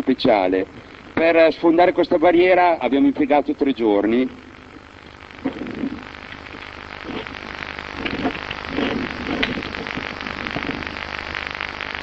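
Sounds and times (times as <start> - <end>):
muffled voices: 0.0 - 10.9
steady hum and hiss: 0.0 - 12.0.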